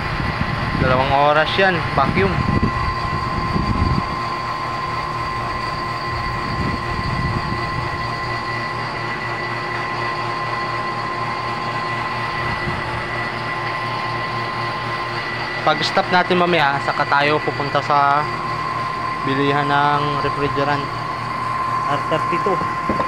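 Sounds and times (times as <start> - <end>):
vacuum pump whining and humming: 0.0 - 23.0.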